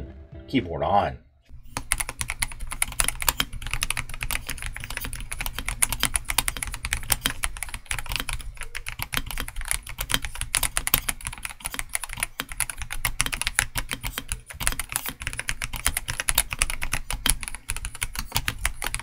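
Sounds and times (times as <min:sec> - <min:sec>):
mechanical keyboard typing: 0:01.5 - 0:19.0.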